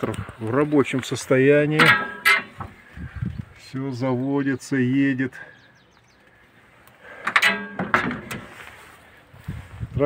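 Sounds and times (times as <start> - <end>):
door clattering: 7.3 - 8.5
dull thuds: 7.4 - 8.6.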